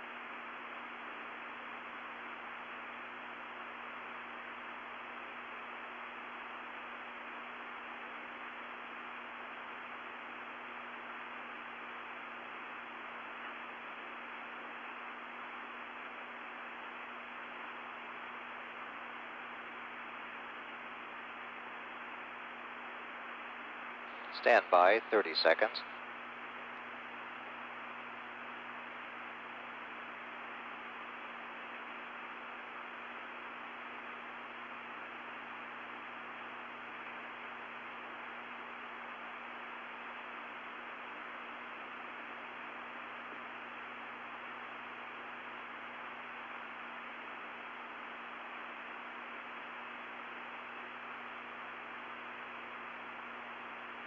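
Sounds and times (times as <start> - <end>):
low constant hum: 0.0 - 54.0
steady hiss: 10.2 - 34.1.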